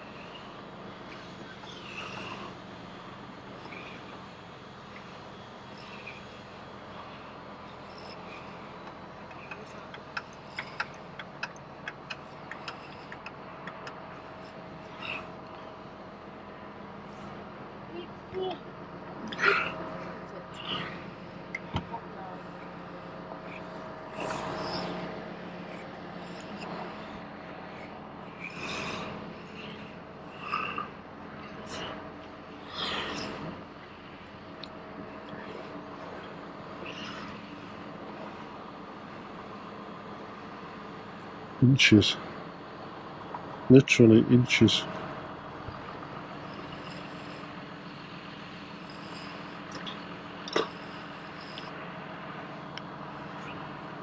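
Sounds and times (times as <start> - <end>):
vehicle engine humming: 0.0 - 54.0
indistinct voices calling out: 41.6 - 42.2, 43.7 - 44.9.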